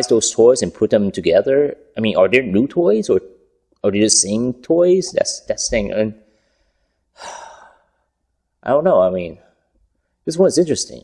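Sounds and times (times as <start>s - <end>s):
man talking: 0.0s - 6.2s, 8.6s - 9.5s, 10.2s - 11.0s
man sighing: 7.2s - 8.0s.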